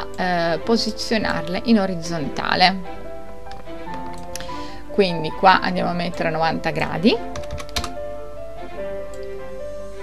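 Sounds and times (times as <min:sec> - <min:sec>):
background music: 0:00.0 - 0:10.0
keyboard typing: 0:07.3 - 0:08.0.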